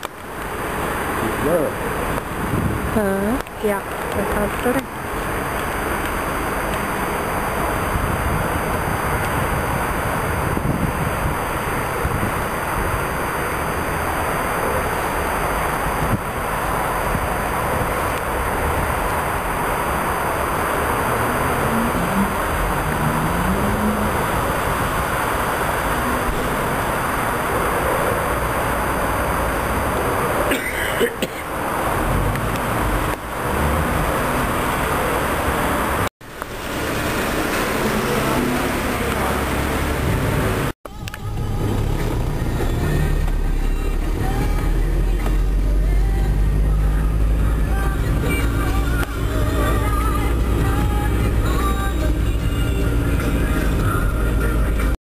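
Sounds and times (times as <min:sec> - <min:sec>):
car engine rumble: 0:00.0 - 0:55.0
car radio music and talk: 0:01.2 - 0:01.9, 0:03.0 - 0:05.0, 0:40.9 - 0:55.0.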